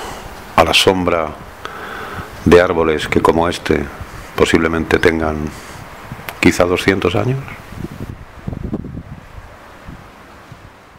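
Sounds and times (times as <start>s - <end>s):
wind buffeting microphone: 0.0s - 10.9s.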